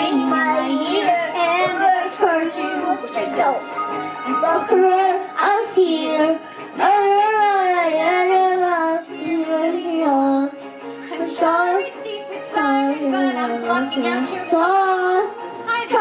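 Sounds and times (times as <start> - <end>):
girl singing: 0.0 - 10.6, 11.2 - 13.2, 14.3 - 16.0
karaoke backing music: 0.0 - 16.0.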